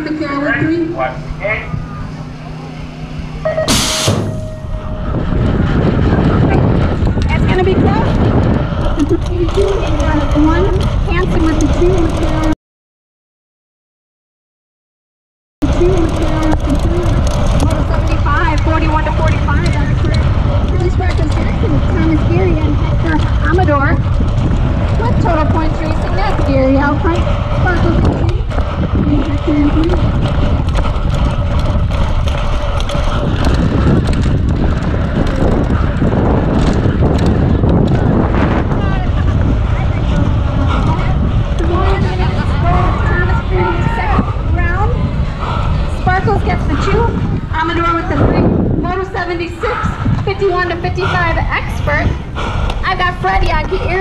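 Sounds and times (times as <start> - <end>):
wind rushing over microphone: 0.0 - 12.6, 15.6 - 54.0
bike tyres on dirt: 15.7 - 49.5.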